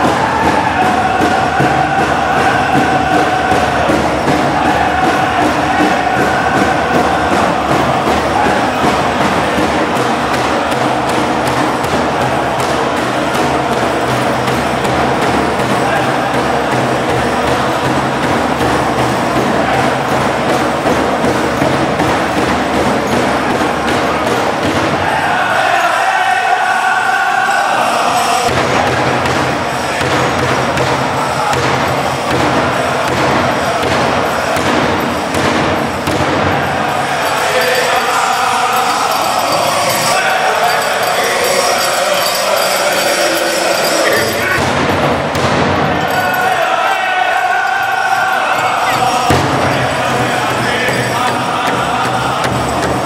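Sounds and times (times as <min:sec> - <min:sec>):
steady beat on large drum: 0:00.0 - 0:25.8, 0:28.4 - 0:41.9, 0:42.6 - 0:46.6, 0:47.9 - 0:53.0
group singing: 0:00.0 - 0:53.0.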